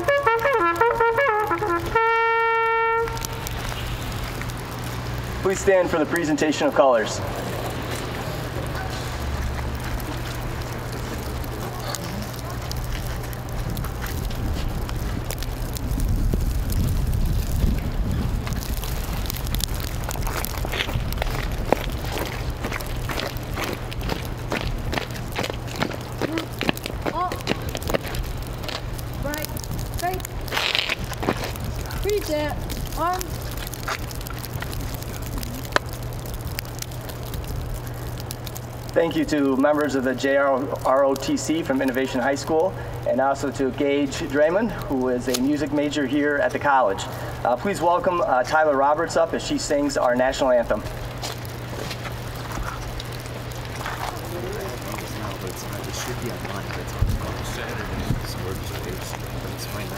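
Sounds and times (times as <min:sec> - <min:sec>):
distant voices: 0:00.0 - 0:59.9
low electrical hum: 0:00.0 - 0:59.9
wind rumble on microphone: 0:07.2 - 0:39.0, 0:50.9 - 0:59.9.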